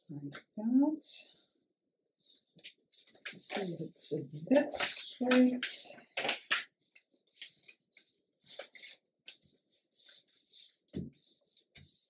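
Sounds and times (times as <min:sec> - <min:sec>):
paper pages rustling: 0:02.2 - 0:12.0.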